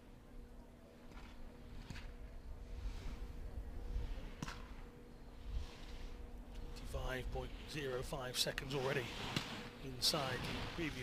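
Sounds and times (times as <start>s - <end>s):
faint steady hum: 0.0s - 11.0s
low wind rumble: 0.0s - 11.0s
ski edges scraping over snow: 8.6s - 11.0s.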